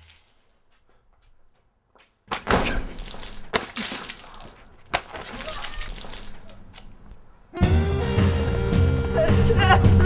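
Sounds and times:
noisy scuffling: 0:00.3 - 0:07.3
thumps and crashes: 0:02.3 - 0:06.3
sharp crack: 0:02.3 - 0:06.9.

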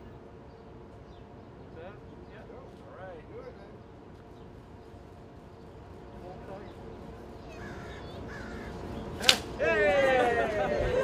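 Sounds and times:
scissors snapping through ribbon: 0:09.2 - 0:09.5
crowd cheering and whooping: 0:09.6 - 0:11.0.

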